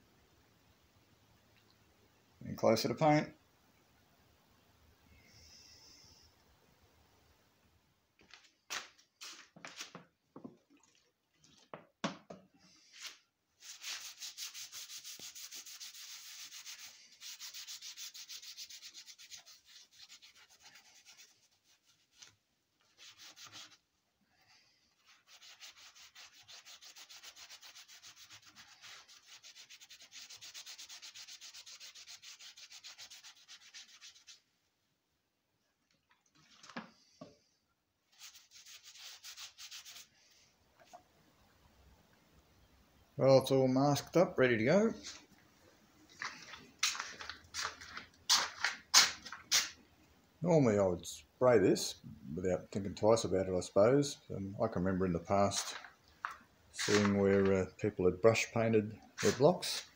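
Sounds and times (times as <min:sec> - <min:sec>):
hand scrubbing metal engine block: 0:13.0 - 0:22.3.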